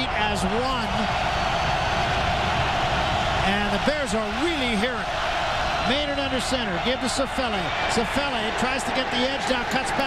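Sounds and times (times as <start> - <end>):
stadium crowd yelling and cheering: 0.0 - 10.0.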